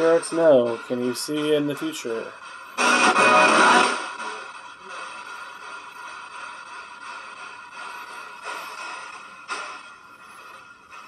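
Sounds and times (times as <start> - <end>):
hissing radio static: 0.0 - 11.0
snatches of broadcast sound: 0.0 - 11.0.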